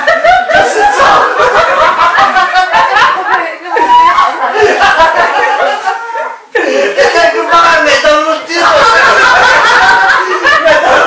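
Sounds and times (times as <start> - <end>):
people laughing and talking: 0.0 - 11.0.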